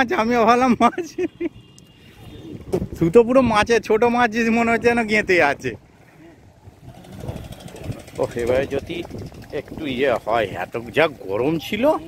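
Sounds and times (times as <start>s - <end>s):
men talking: 0.0s - 1.6s, 2.3s - 12.0s
low outdoor background noise: 0.0s - 12.0s.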